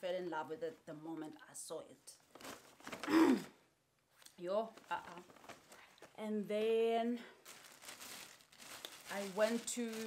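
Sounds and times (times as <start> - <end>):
plastic bag crinkling: 4.8 - 6.2, 7.4 - 10.0.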